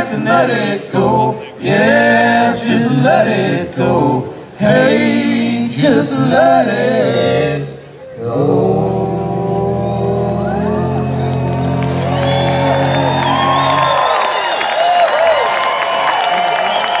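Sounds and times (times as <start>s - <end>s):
crowd cheering and whooping: 10.3s - 17.0s.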